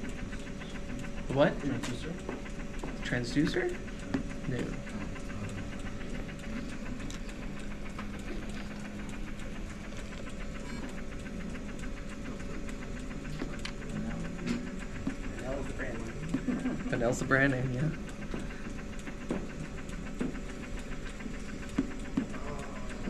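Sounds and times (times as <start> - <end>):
jet ventilator valve pulsing: 0.0 - 23.0
steady machine hum: 0.0 - 23.0.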